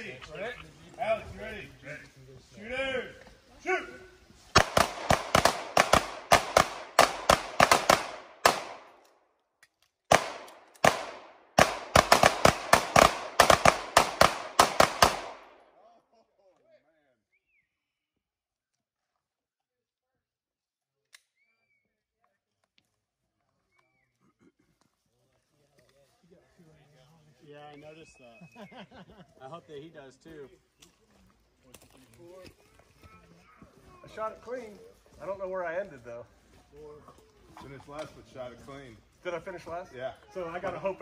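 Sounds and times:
rapid gunfire: 4.6 - 8.9, 10.1 - 15.5.

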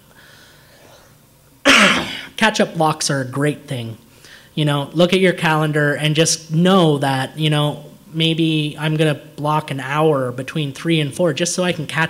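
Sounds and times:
man coughing: 1.6 - 2.4.

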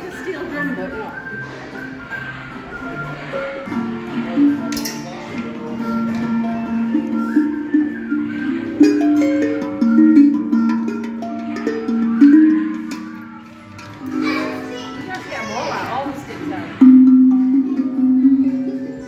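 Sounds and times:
steel tongue drums ringing: 4.4 - 14.8, 16.8 - 19.0.

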